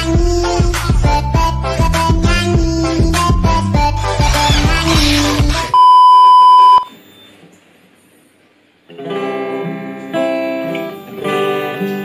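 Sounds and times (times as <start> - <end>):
high steady test tone beep: 5.7 - 7.3.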